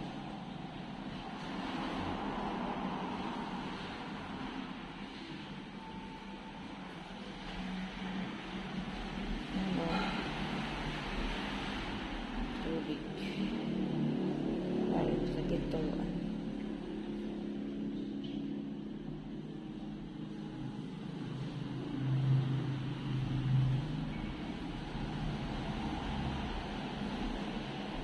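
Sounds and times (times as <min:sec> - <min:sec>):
low motor hum: 0:00.0 - 0:28.0.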